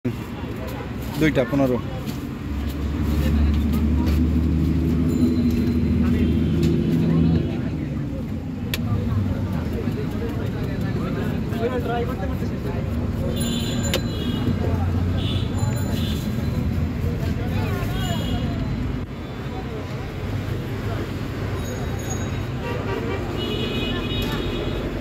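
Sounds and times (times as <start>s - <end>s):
traffic background: 0.0s - 25.0s.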